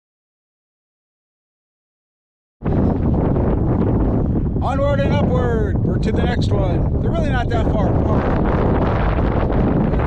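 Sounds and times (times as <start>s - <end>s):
wind buffeting microphone: 2.6s - 10.0s.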